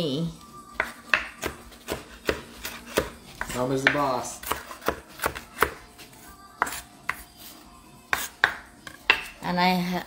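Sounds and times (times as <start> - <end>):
knife chopping on cutting board: 0.8 - 5.8, 6.6 - 7.2, 8.1 - 9.4.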